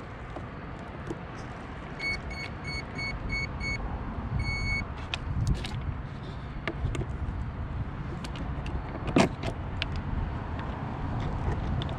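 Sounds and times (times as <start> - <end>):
short electronic beeps: 2.0 - 3.8, 4.4 - 4.9.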